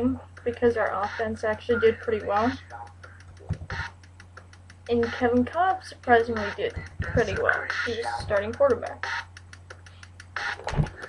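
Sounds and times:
steady low hum: 0.0 - 11.0
rapid even clicking: 0.2 - 11.0
low thump: 3.5 - 3.8, 10.6 - 11.0.

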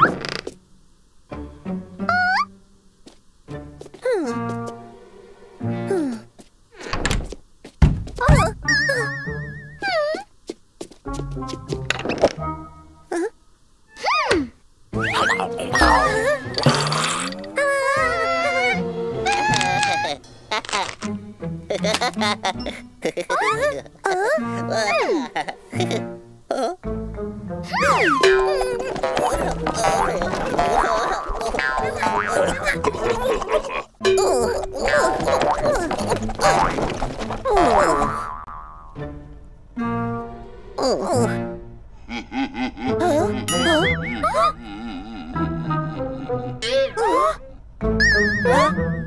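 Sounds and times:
background music: 0.7 - 6.4, 11.1 - 13.2, 14.9 - 49.0
heavy cartoon thuds: 7.0 - 8.7
cartoon springy sound effects: 8.2 - 10.2, 13.9 - 18.4, 27.7 - 33.4, 43.5 - 44.6, 48.0 - 49.0.

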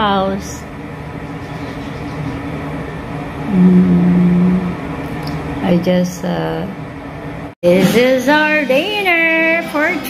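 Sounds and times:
faint hum: 0.0 - 7.8.

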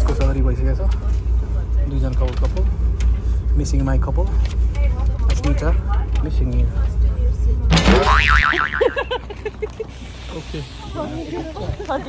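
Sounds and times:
bouncing blips: 7.7 - 9.1
cartoon boing sound effect: 7.7 - 9.1.

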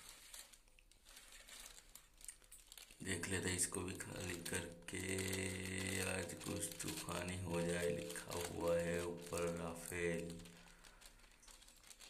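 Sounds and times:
plastic packet crinkling: 0.0 - 12.0.

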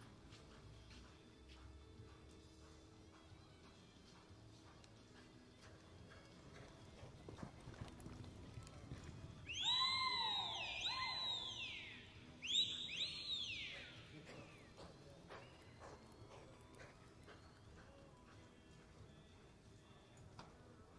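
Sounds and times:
horse whinnying: 9.5 - 11.6.

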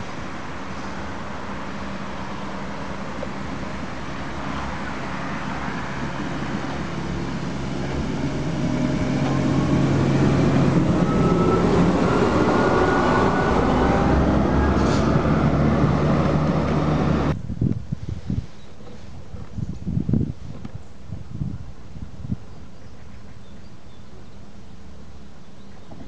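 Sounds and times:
railcar running past: 0.0 - 17.4.

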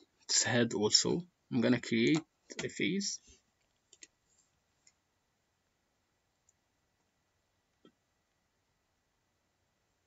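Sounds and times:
computer mouse clicks: 3.6 - 4.2.

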